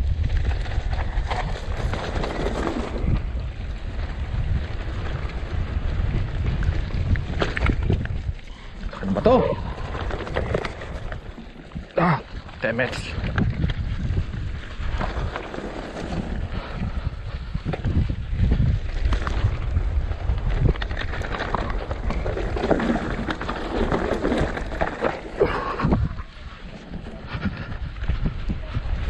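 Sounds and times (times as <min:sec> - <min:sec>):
bike rattling: 0:00.0 - 0:29.0
bike tyres crunching over stones: 0:00.0 - 0:29.0
wind buffeting microphone: 0:00.0 - 0:29.0.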